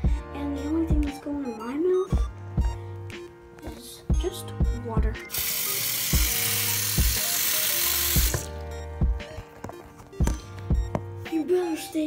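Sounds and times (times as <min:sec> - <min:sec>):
background music with steady beat: 0:00.0 - 0:12.0
water running from sink tap: 0:05.3 - 0:08.5.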